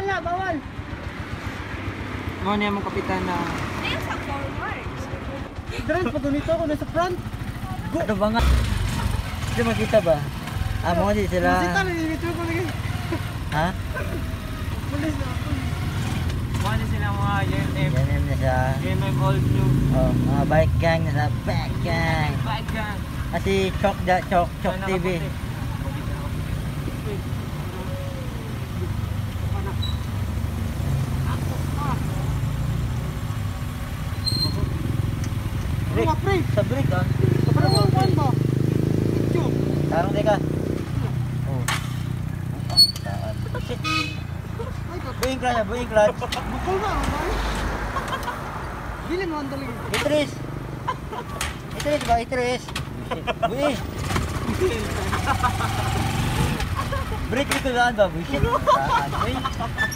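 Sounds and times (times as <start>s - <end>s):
vehicle engine rumbling: 0.0s - 59.9s
wind and road noise: 0.0s - 59.9s
faint voices of riders: 22.2s - 32.7s.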